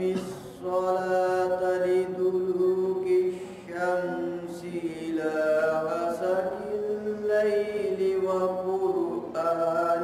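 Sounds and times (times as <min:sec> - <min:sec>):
man chanting recitation: 0:00.0 - 0:10.0.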